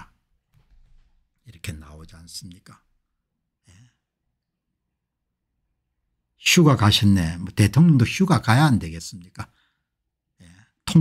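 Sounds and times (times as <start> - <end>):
man speaking soft word: 10.4 - 11.0.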